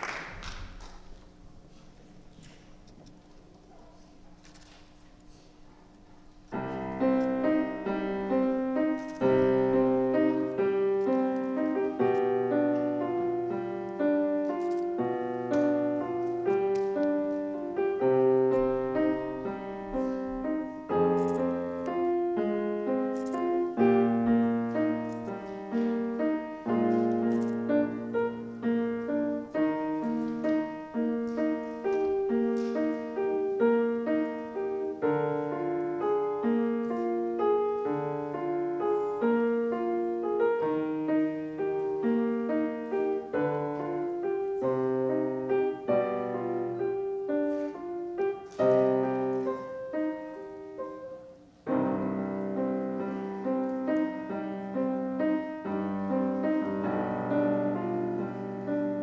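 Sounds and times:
solo piano classical piece: 0.0 - 59.0.

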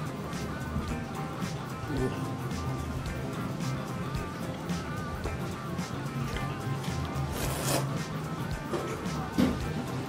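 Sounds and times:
background guitar music: 0.0 - 10.0
slurping noodles: 7.2 - 8.0.

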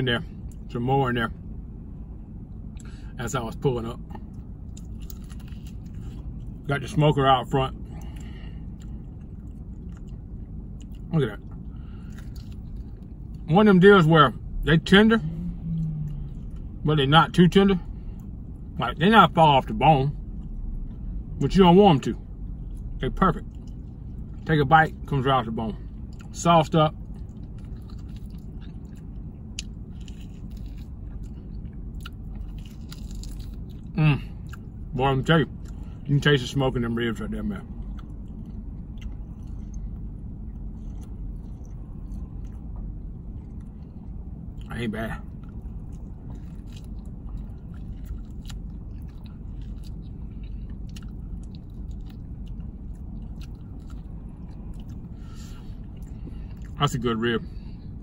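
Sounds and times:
steady low hum: 0.0 - 58.0
person chewing: 4.1 - 6.6, 7.9 - 13.4, 25.9 - 26.3, 26.9 - 34.8, 37.7 - 44.7, 45.3 - 56.8.

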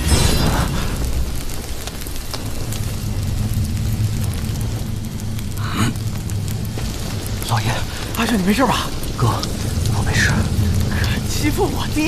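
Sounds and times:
fire crackling: 0.0 - 12.0
low steady rumble: 0.0 - 12.0.

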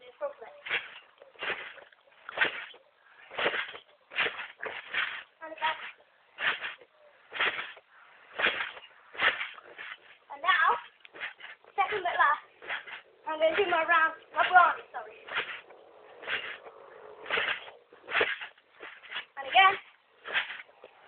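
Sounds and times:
trampoline bouncing: 0.0 - 21.0.

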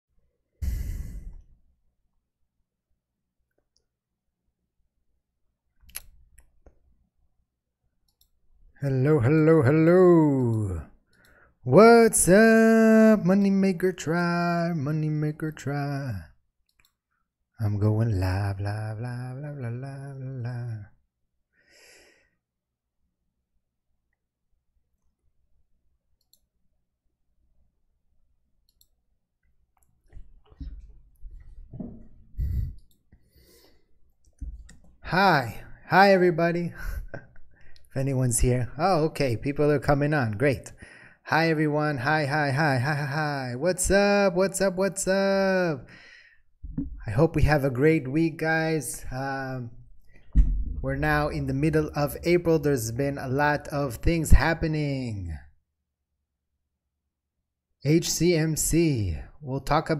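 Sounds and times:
man sighing: 0.6 - 1.6, 32.4 - 33.8.

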